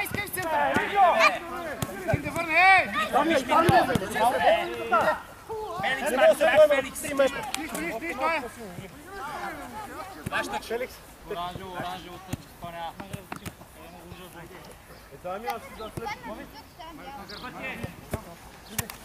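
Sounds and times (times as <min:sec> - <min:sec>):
players shouting: 0:00.0 - 0:12.6
football being kicked: 0:03.5 - 0:04.2.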